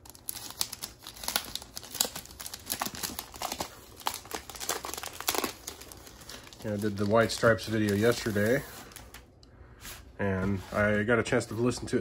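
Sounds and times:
plastic shrink wrap crinkling: 0.0 - 9.3.

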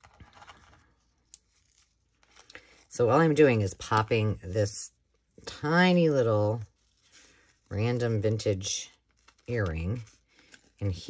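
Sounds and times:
lace and paper rustling: 0.0 - 4.0, 6.2 - 11.0.

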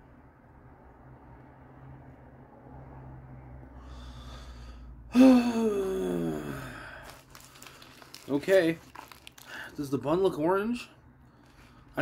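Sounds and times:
man sighing: 5.1 - 7.2
paper wrapper crinkling: 7.0 - 10.3.

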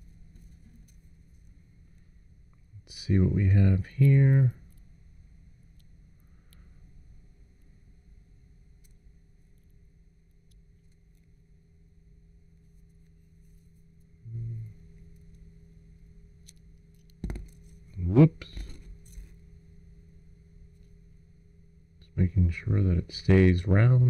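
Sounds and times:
low voiced hum: 0.0 - 10.2, 11.4 - 16.4, 17.2 - 24.0
steady low hum: 0.0 - 24.0.

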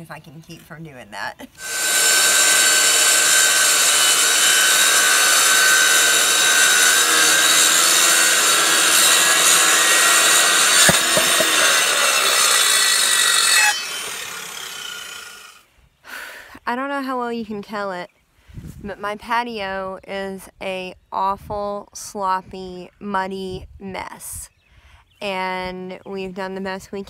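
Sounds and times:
circular saw cutting wood: 1.6 - 15.6.

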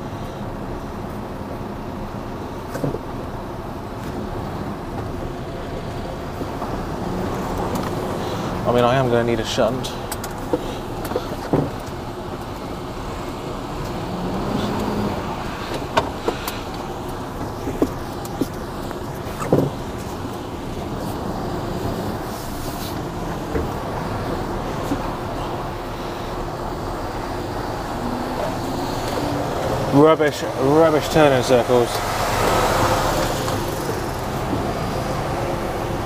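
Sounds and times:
diesel engine running: 0.0 - 36.0
sharp clicks and knocks: 15.7 - 20.4.

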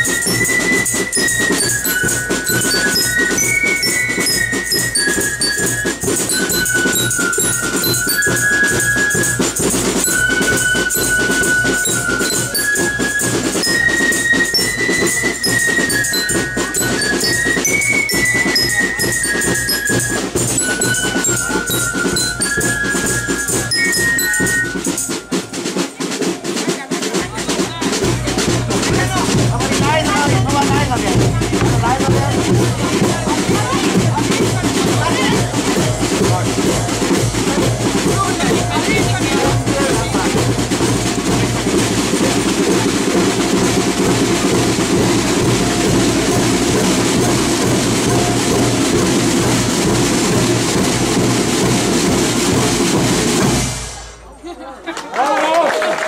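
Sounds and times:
voices: 0.0 - 53.2
snare and bass drums beat: 0.0 - 54.3.

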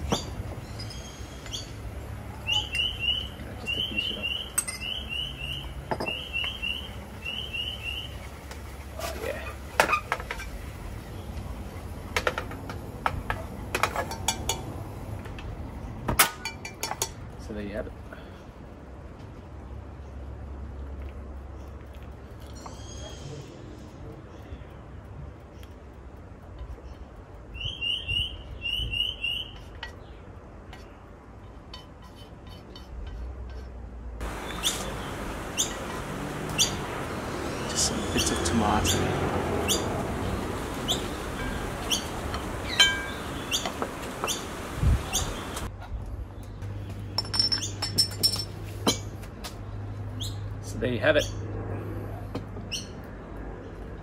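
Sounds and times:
bird chirping: 0.0 - 8.5, 26.7 - 31.6, 34.2 - 45.7
steady hiss: 34.2 - 39.2, 39.9 - 45.7.

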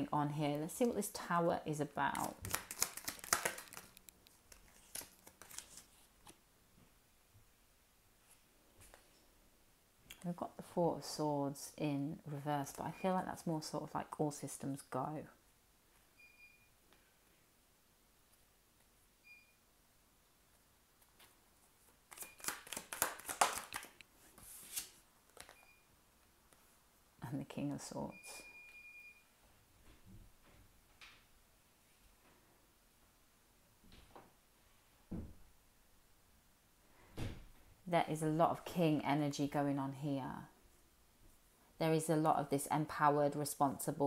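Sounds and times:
cards clicking and flicking: 2.2 - 6.4, 22.1 - 24.0
card sliding from deck: 24.4 - 25.0.

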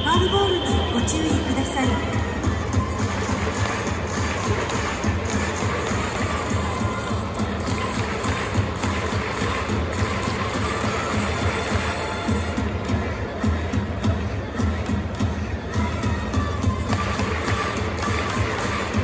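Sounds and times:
cheering music in stadium: 0.0 - 19.0
crowd noise: 0.0 - 19.0.

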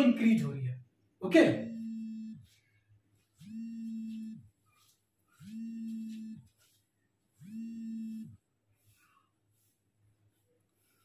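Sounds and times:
mobile phone buzzing: 1.6 - 2.6, 3.4 - 4.5, 5.4 - 6.7, 7.4 - 8.4.

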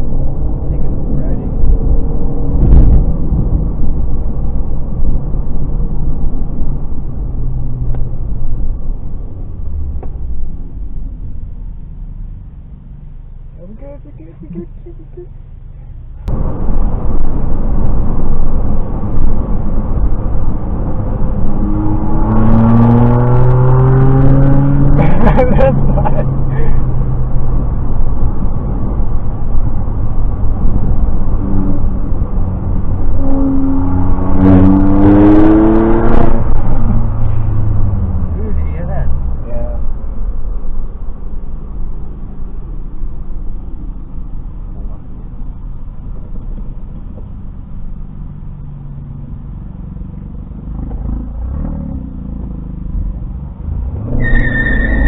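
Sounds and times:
car engine and road noise: 0.0 - 55.0
car engine revving up: 16.3 - 39.9, 49.8 - 55.0.

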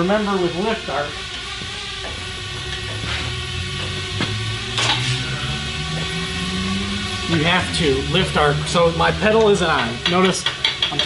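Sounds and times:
steady low hum: 0.0 - 10.7.

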